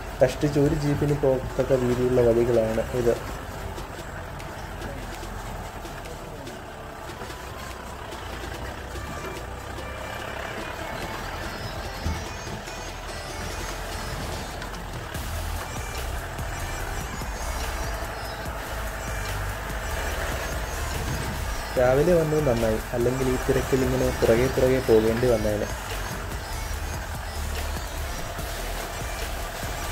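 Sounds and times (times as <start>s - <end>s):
background music: 0.0s - 29.9s
engine and road rumble: 0.0s - 29.9s.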